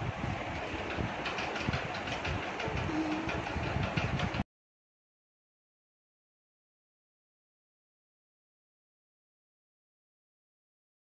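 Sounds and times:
rattles and knocks: 0.4 - 4.4.

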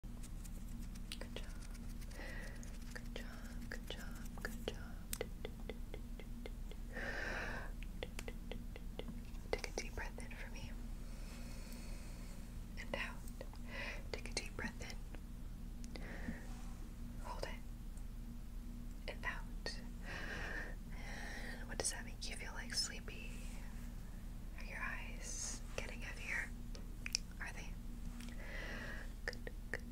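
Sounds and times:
steady low hum: 0.0 - 29.9
soft whispering: 0.8 - 6.9, 7.6 - 10.8, 12.8 - 15.1, 17.2 - 17.7, 19.0 - 19.9, 21.6 - 23.7, 24.5 - 27.8.

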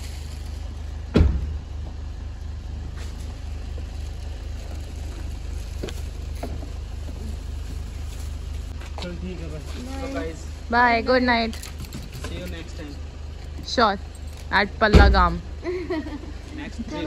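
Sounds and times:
car engine idling: 0.0 - 17.0
loud thump: 1.1 - 1.6, 14.9 - 15.4.

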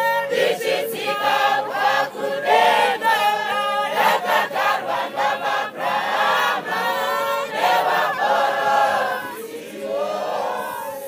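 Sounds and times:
choir singing unaccompanied: 0.0 - 11.0.

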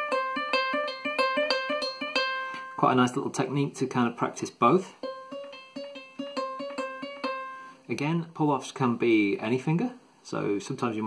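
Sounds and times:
ukulele pull-offs and hammer-ons: 0.0 - 2.8, 4.8 - 7.7.

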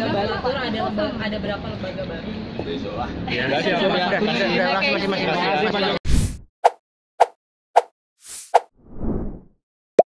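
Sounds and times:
fuller swish: 7.2 - 9.5
quick airy whoosh: 8.3 - 9.5.

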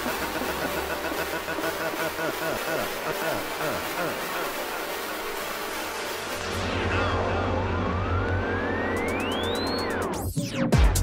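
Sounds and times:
rising synth tone: 6.0 - 10.6.

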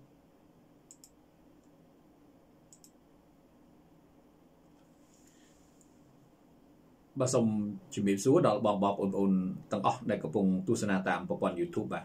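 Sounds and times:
low steady hum: 0.0 - 12.0
computer mouse double-clicks: 0.9 - 1.7, 2.7 - 3.0.

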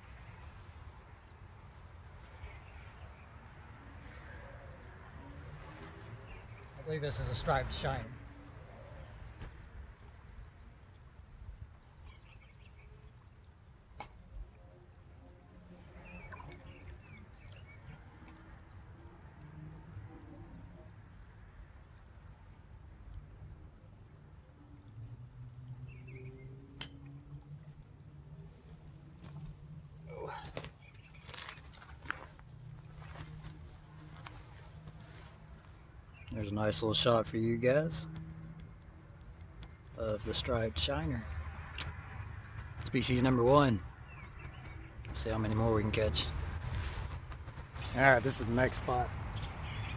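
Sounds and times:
steady low rumble: 42.9 - 49.9.

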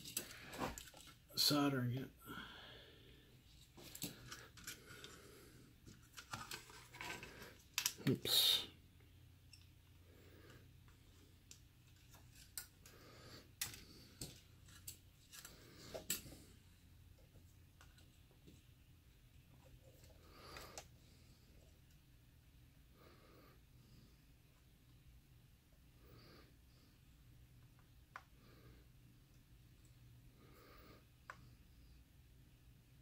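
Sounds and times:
circuit board being handled: 5.8 - 8.1.

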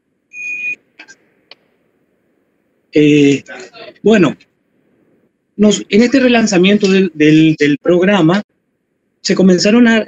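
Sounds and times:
high electronic beep: 0.3 - 0.8.

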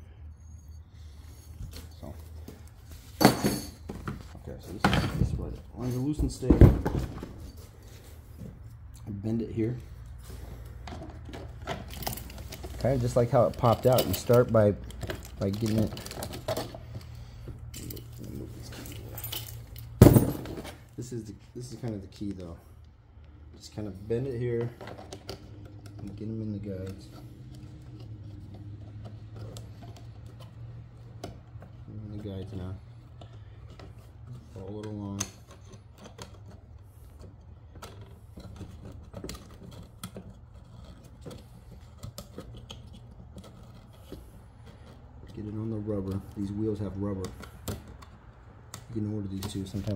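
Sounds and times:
keys jangling: 17.7 - 20.0.

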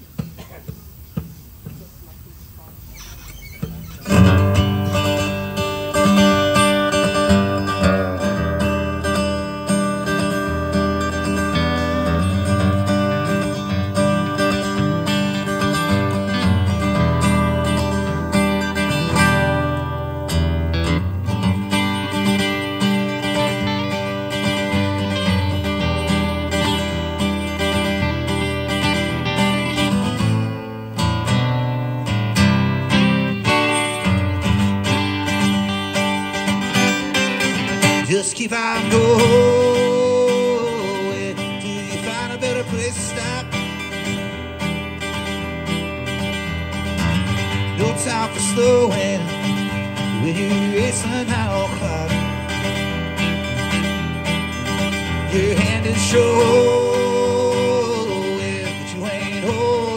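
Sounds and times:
acoustic guitars strumming: 2.6 - 59.9.

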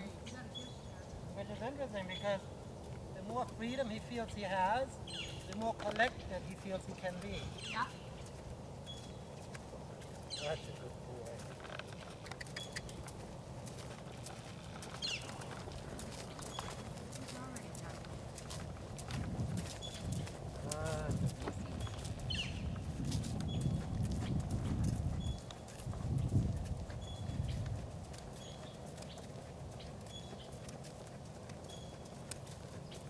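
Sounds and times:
horse hoofbeats on sand: 2.8 - 33.0
horse tack clicks: 5.4 - 6.2, 11.3 - 17.4, 27.5 - 33.0.

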